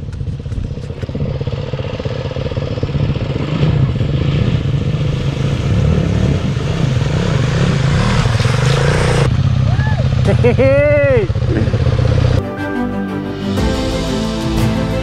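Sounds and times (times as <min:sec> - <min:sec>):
dirt bike engine revving: 0:00.7 - 0:12.4.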